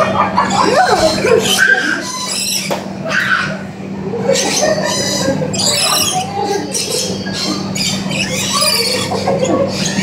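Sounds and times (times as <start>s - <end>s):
steady low hum: 0.0s - 10.0s
lorikeets screeching: 0.4s - 10.0s.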